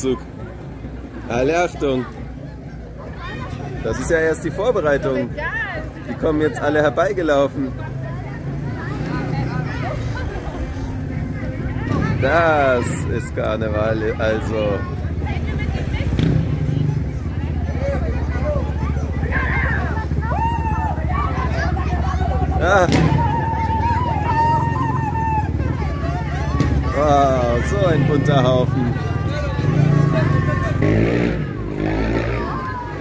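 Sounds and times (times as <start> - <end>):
faint voices: 0.0 - 33.0
vehicle engine running: 6.2 - 33.0.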